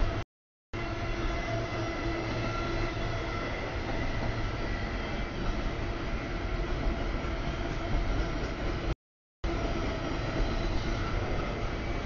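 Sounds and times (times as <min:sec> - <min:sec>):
freight train rumbling on rails: 0:00.0 - 0:00.2, 0:00.8 - 0:12.0.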